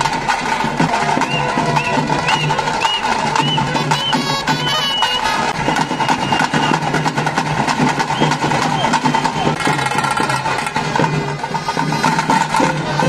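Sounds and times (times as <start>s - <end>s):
fast drum beat: 0.0s - 13.0s
voices: 0.7s - 7.1s, 8.1s - 13.0s
droning wind instrument: 3.6s - 6.7s, 11.1s - 13.0s.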